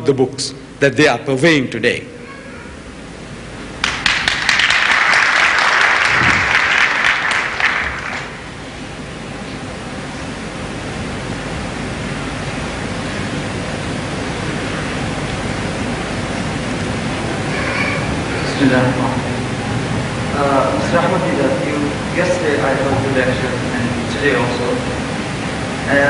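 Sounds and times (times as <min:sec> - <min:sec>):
steady hiss: 0:00.0 - 0:26.0
audience applauding: 0:03.8 - 0:08.6.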